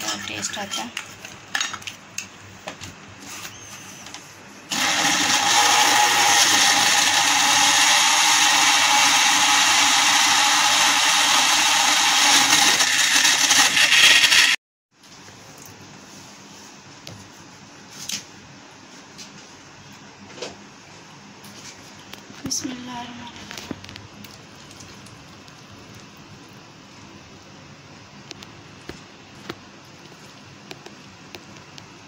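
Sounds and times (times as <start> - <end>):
blender running: 4.7 - 14.6.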